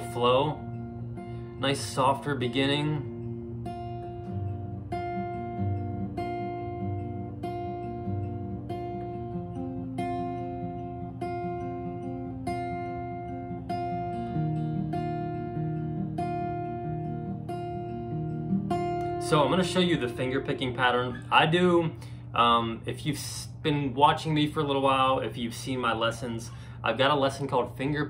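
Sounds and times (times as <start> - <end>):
acoustic guitar fingerpicked softly: 0.0 - 28.0.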